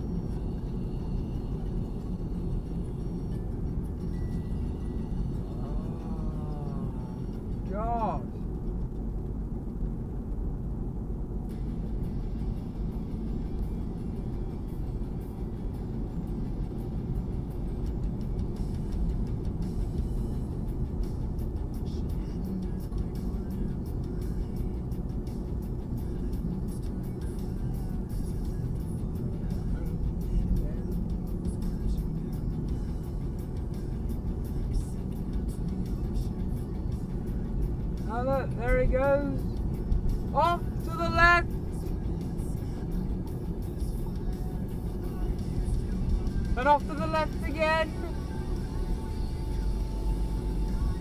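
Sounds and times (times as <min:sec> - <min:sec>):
car road and engine noise: 0:00.0 - 0:51.0.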